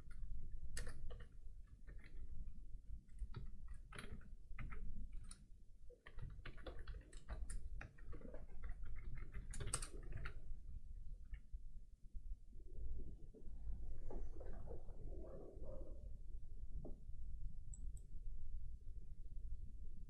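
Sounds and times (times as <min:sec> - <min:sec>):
soft muffled sound: 0:10.0 - 0:19.2.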